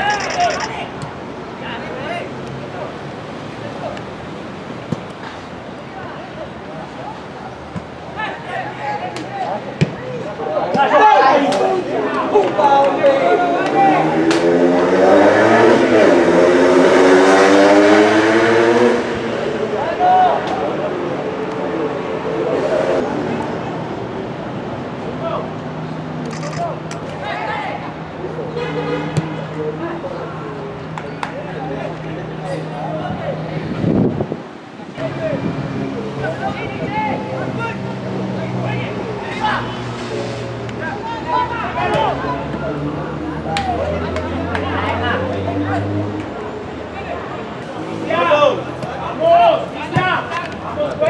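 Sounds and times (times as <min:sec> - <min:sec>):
voices shouting and calling: 0:00.0 - 0:18.5, 0:34.7 - 0:51.0.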